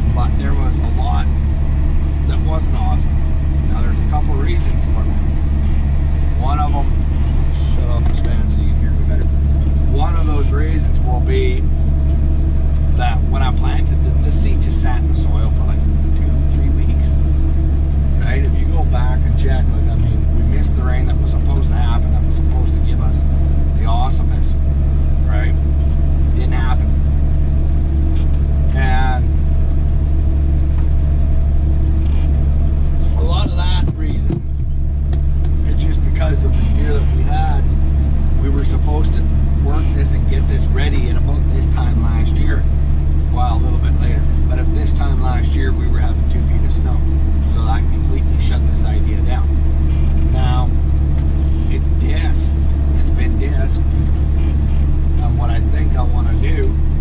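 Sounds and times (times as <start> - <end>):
tractor engine droning: 0.0 - 57.0.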